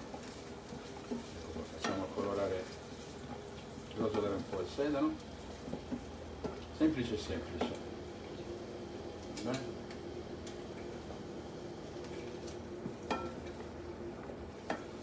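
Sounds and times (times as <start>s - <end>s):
celery sizzling in a pan: 0.0s - 15.0s.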